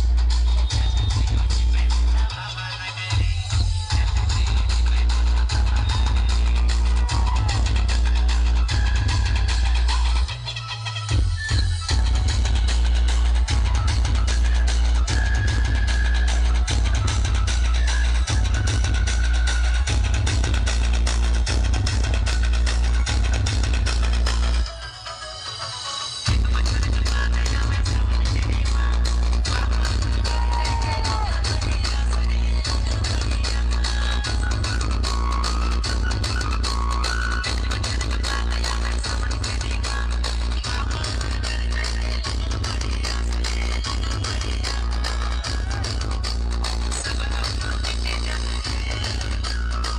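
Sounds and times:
bass-heavy electronic dance music: 0.0 - 49.9.

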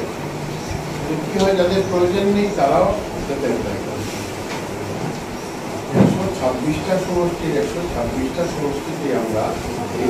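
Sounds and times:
room background noise: 0.0 - 10.0
speech: 1.0 - 4.1, 5.9 - 10.0.

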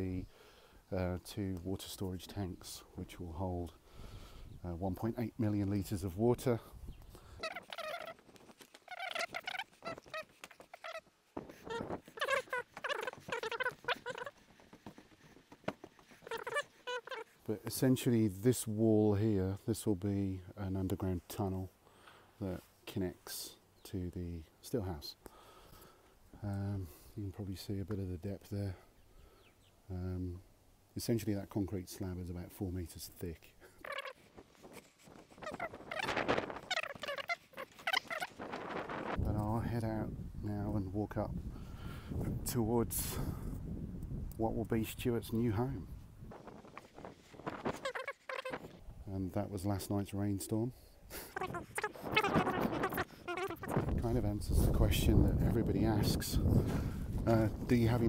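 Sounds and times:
fowl warbling calls: 7.2 - 17.4, 33.6 - 39.2, 46.3 - 48.8, 51.1 - 53.9
squeaky animal chirps: 7.4 - 15.2, 15.9 - 17.4, 33.6 - 38.7, 46.8 - 48.8, 51.2 - 53.9.

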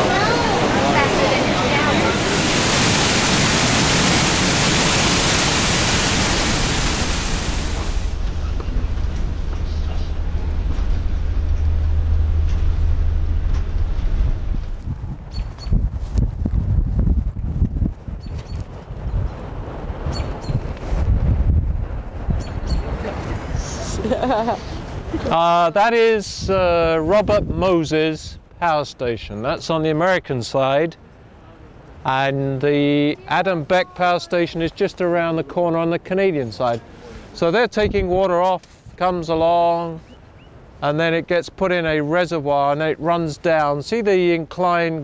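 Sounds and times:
waterfall roaring: 0.0 - 8.2
low thumps: 6.4 - 18.0
bus interior hum: 8.1 - 15.3.

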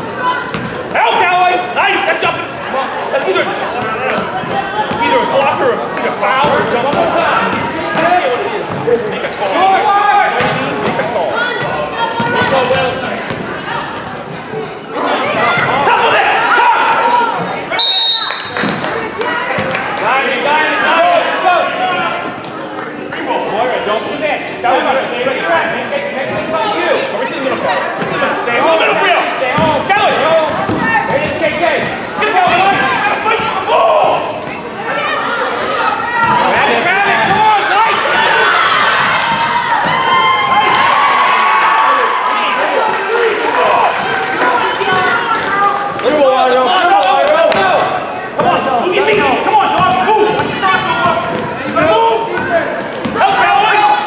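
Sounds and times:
voices overlapping: 0.0 - 54.0.

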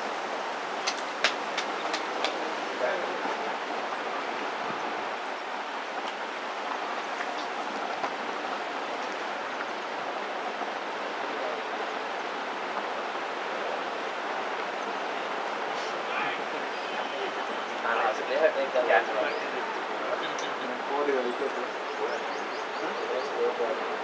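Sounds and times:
rushing hiss: 15.5 - 17.5.

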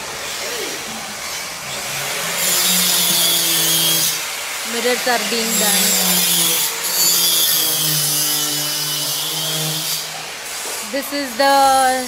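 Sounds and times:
electric circular saw cutting board: 0.0 - 12.0.

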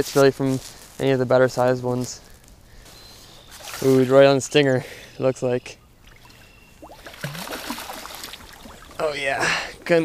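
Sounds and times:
fish splashing in water: 3.6 - 4.0, 6.0 - 9.0.

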